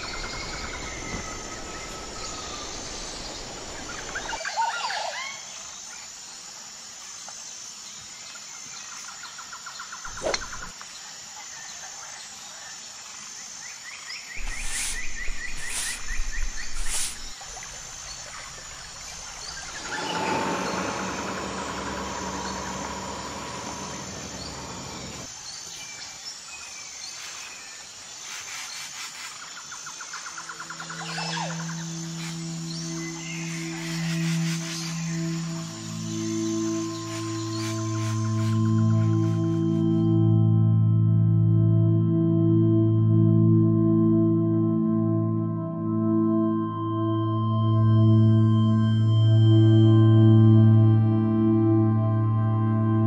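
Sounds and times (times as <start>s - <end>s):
birds chirping and trilling: 0.0s - 6.2s, 8.8s - 10.8s, 11.5s - 40.0s
ambient music with ringing tone: 14.4s - 25.3s, 30.3s - 53.0s.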